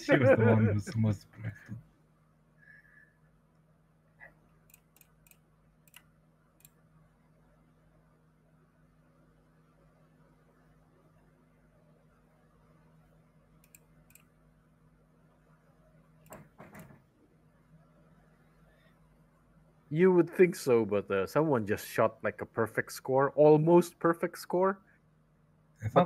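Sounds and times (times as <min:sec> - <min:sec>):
faint low hum: 0:00.0 - 0:26.0.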